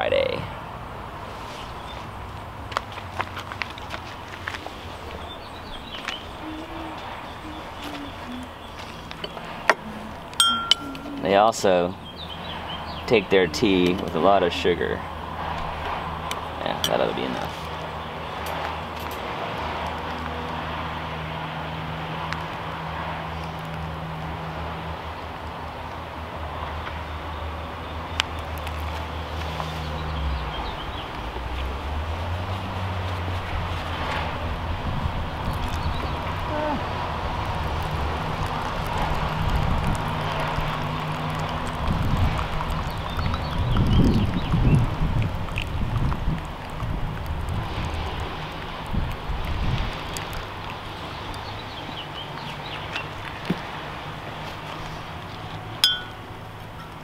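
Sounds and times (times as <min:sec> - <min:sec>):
engine humming: 0:00.9 - 0:57.0.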